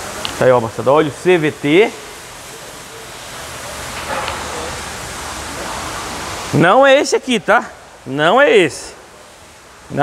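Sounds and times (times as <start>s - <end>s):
workshop background hiss: 0.0s - 10.0s.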